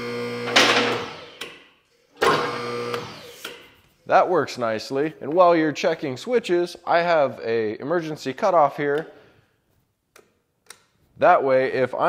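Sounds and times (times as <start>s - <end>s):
hydraulic pump motor running: 0.0s - 1.6s, 2.2s - 3.7s.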